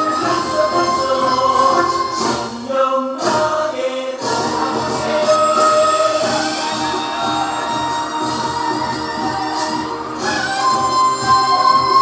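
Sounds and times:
drumming: 0:00.0 - 0:12.0
group of voices singing: 0:00.0 - 0:12.0.

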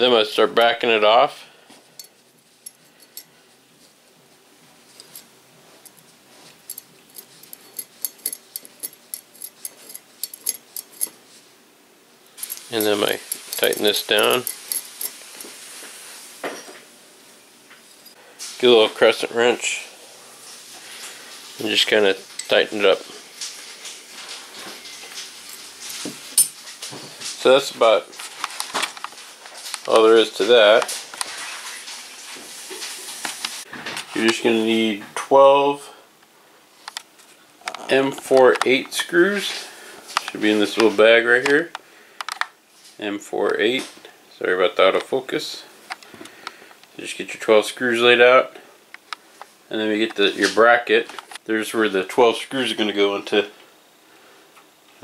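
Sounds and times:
steady background hiss: 0:00.0 - 0:55.0
screw and nut clicking on metal: 0:06.7 - 0:11.2, 0:12.4 - 0:15.5.

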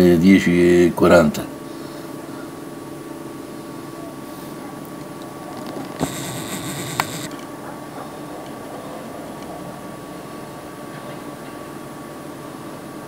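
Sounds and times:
steady background noise: 0:00.1 - 0:13.0
brief high whirring: 0:06.0 - 0:07.3
sharp click: 0:06.0 - 0:07.3.

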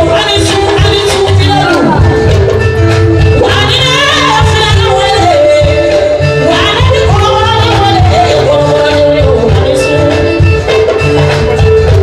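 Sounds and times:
woman singing: 0:00.0 - 0:02.4, 0:03.2 - 0:10.8
live band playing: 0:00.0 - 0:12.0.

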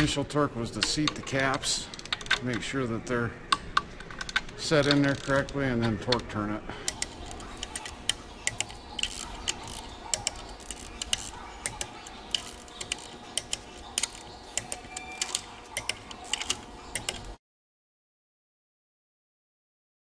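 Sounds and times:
socket wrench clicking: 0:00.8 - 0:02.6, 0:03.5 - 0:06.3, 0:06.9 - 0:17.3.

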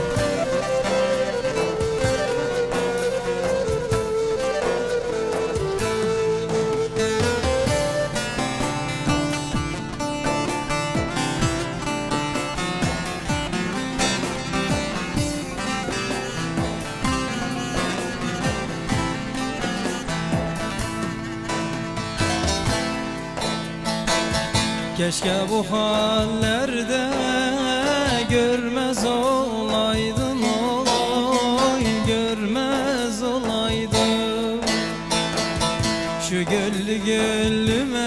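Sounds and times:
plucked long-necked lute melody: 0:00.0 - 0:38.0.

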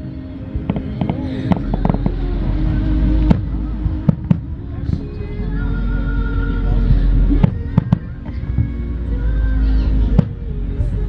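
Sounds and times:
low rumble of bursts: 0:00.0 - 0:11.0.

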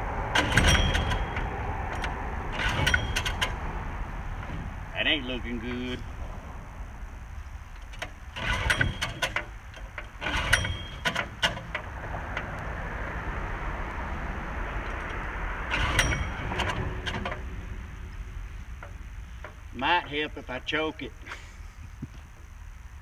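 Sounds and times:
recoil starter rope pulled: 0:00.3 - 0:03.6, 0:07.8 - 0:12.6, 0:14.8 - 0:18.1.

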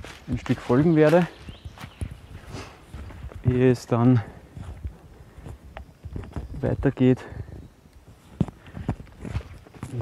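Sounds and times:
footsteps on muddy trail: 0:00.0 - 0:10.0.

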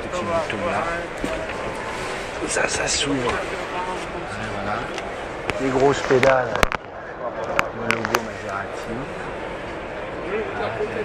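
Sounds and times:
man talking: 0:00.0 - 0:01.6, 0:02.4 - 0:05.0, 0:05.6 - 0:09.2.

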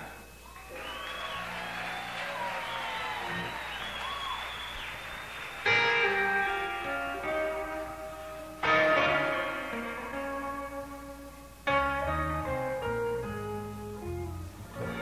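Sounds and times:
audience cheering: 0:00.5 - 0:06.7
electric guitar chords: 0:05.6 - 0:15.0.

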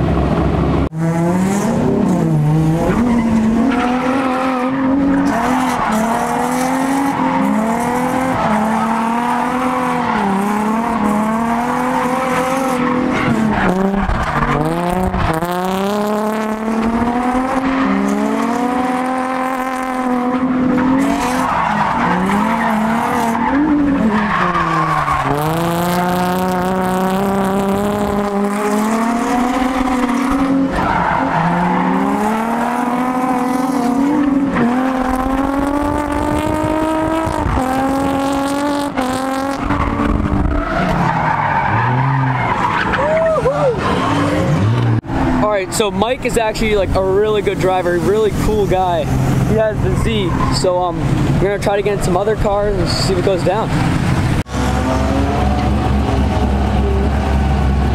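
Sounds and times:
car engine revving hard: 0:00.0 - 0:42.9, 0:52.5 - 0:57.9
tyres squealing and skidding: 0:02.5 - 0:57.9.

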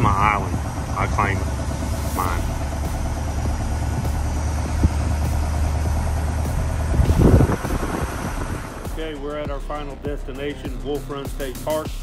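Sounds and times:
road and engine rumble: 0:00.0 - 0:12.0
loud burst of noise: 0:00.5 - 0:08.9.

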